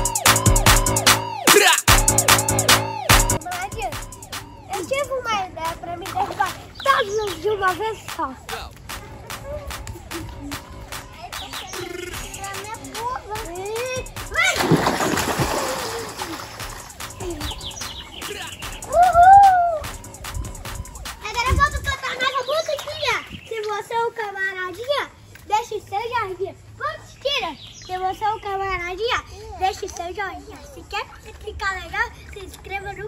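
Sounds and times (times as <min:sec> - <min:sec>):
young children talking and calling: 0:02.0 - 0:33.0
water churning and spray falling: 0:14.3 - 0:17.3
splash into pool: 0:14.3 - 0:17.6.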